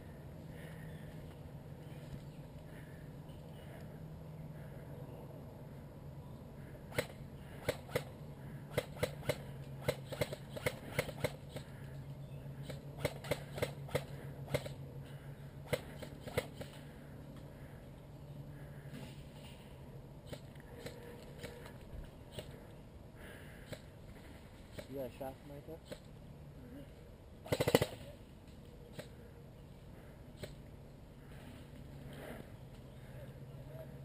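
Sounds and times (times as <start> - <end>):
steady low hum: 0.0 - 34.0
airsoft guns popping: 27.5 - 28.0.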